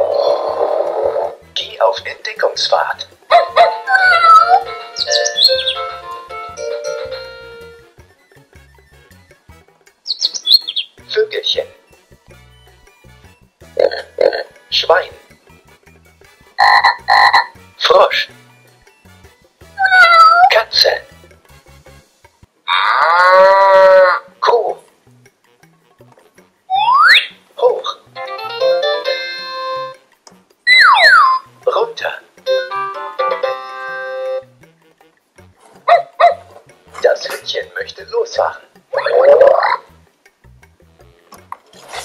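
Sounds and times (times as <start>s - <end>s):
electronic toy tune: 3.6s - 7.9s, 16.6s - 17.6s, 28.2s - 30.0s, 32.4s - 34.6s
toy speaker cow moo: 16.6s - 17.5s, 22.7s - 24.5s.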